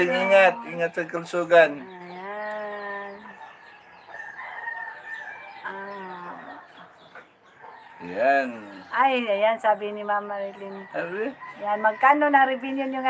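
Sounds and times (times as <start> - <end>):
rooster crowing: 3.3 - 7.0, 7.6 - 9.0, 10.6 - 12.6.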